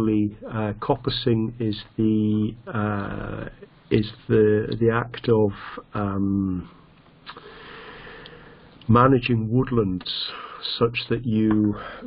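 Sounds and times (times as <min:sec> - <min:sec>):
man speaking: 0:00.0 - 0:06.8, 0:08.8 - 0:12.0
man breathing in: 0:07.3 - 0:08.8.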